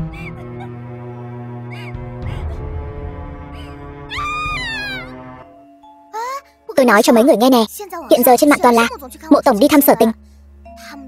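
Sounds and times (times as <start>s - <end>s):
sombre background music: 0.0s - 11.0s
long high scream: 3.6s - 5.2s.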